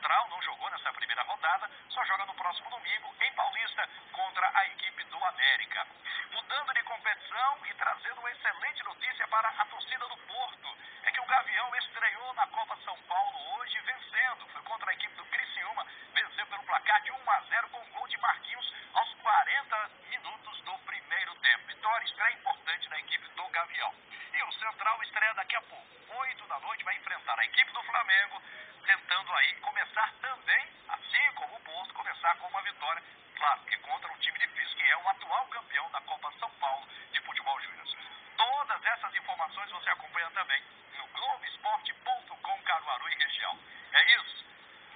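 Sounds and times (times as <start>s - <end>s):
man speaking through phone: 0.0s - 44.5s.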